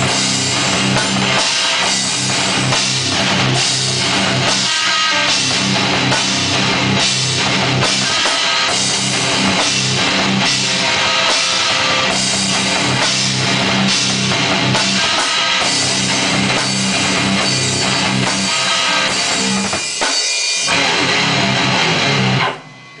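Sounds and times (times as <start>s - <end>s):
drum kit playing: 0.0s - 23.0s
electric guitar rock riff: 0.0s - 23.0s.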